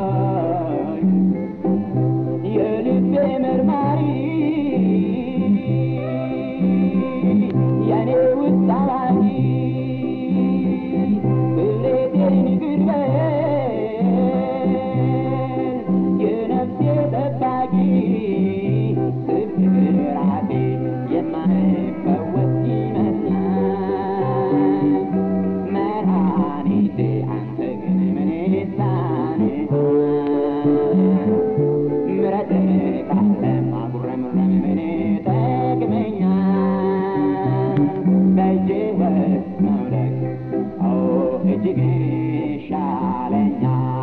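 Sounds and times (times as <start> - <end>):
man singing: 0.0 - 44.0
plucked string accompaniment: 0.0 - 44.0.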